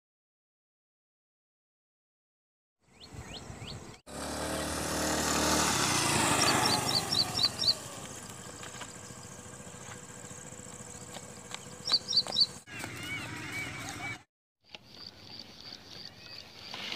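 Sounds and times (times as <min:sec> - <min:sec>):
birds chirping: 0:02.8 - 0:14.2, 0:14.8 - 0:16.9
motor scooter riding past: 0:03.8 - 0:14.3.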